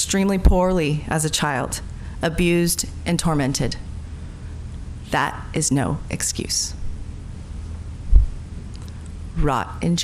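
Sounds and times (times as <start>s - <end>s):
steady low hum: 0.0s - 10.0s
dull low thump: 8.1s - 8.4s.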